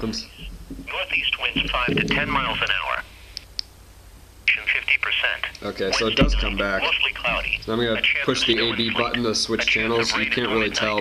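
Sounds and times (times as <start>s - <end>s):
low hum: 0.0s - 3.3s
radio broadcast voice: 0.1s - 3.1s, 4.5s - 11.0s.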